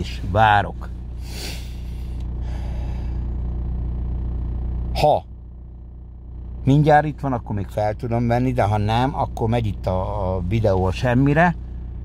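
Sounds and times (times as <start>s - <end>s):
car engine idling: 0.0s - 12.0s
breathy exhale: 1.2s - 3.3s.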